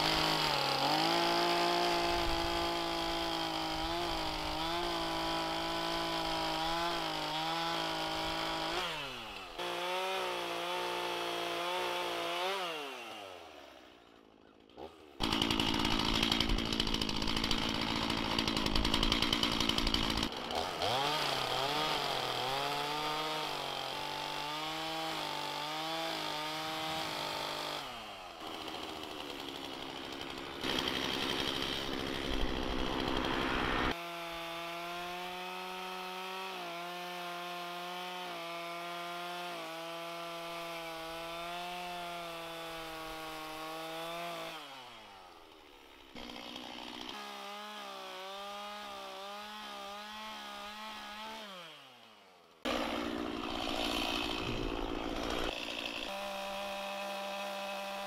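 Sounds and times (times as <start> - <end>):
chainsaw cutting into wood: 0.0 - 58.0
chainsaw running at high revs: 0.0 - 58.0.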